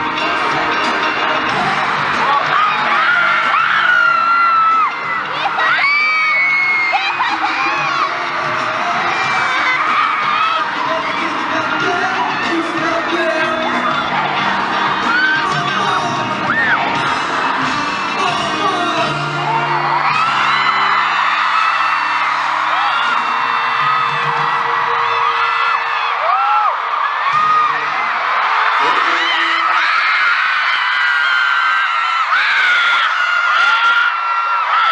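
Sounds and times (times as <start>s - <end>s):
amplified pop music: 0.0s - 34.9s
crowd screaming and cheering: 0.0s - 34.9s.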